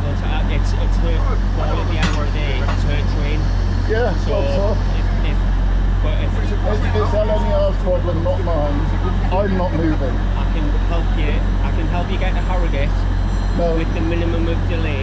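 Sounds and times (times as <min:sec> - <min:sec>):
indistinct voices: 0:00.0 - 0:15.0
stationary train humming: 0:00.0 - 0:15.0.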